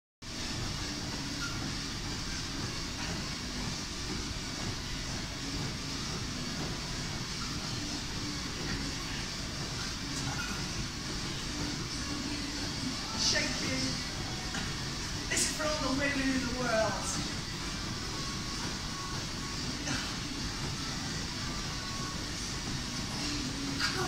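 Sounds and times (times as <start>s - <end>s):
ventilation rumble and hiss: 0.2s - 24.0s.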